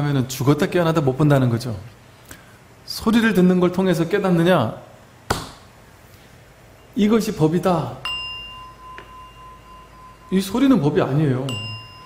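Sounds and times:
small metal bell ringing: 8.0s - 12.0s.

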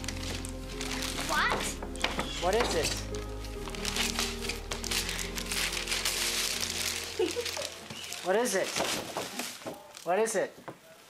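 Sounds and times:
background music: 0.0s - 10.2s
packaging crinkling and rustling: 0.0s - 10.3s.

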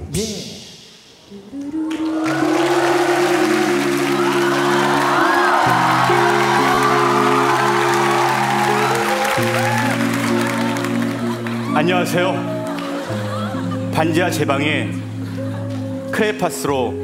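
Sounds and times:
a cappella group singing chords: 1.1s - 17.0s
audience applause and cheering: 1.8s - 13.3s.

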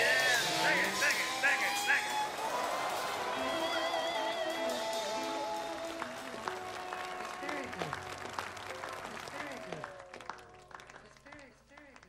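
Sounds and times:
music: 0.0s - 11.3s
scattered hand claps: 0.0s - 12.0s.

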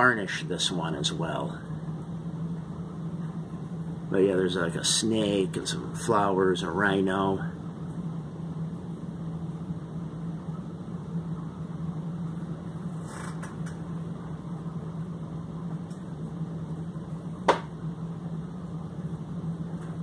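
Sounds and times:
fan-like appliance humming: 0.0s - 20.0s.

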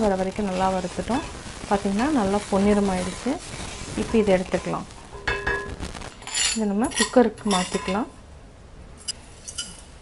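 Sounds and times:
ladle scraping a metal pan: 6.2s - 8.0s.

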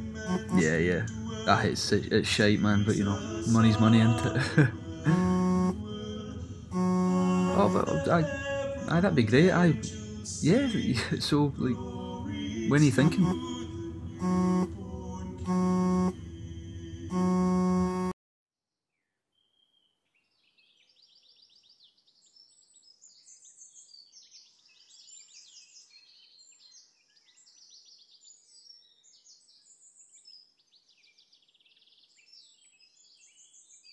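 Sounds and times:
loud electronic chord: 0.0s - 0.9s, 5.1s - 5.8s, 6.7s - 8.2s, 13.0s - 14.8s, 15.4s - 16.3s, 17.1s - 18.1s
birds chirping and trilling: 19.7s - 33.9s.

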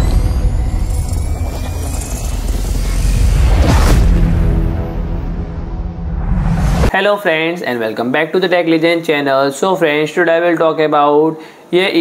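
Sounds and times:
hissing noise: 0.0s - 5.2s
deep low drone: 0.0s - 6.9s.

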